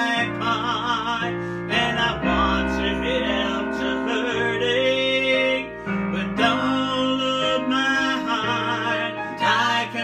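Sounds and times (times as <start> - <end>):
gospel singing with wavering notes: 0.0 - 10.0.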